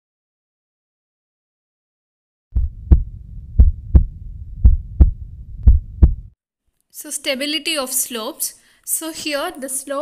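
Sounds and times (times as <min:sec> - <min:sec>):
heartbeat thumps: 0:02.6 - 0:06.4
low rumble: 0:02.6 - 0:06.4.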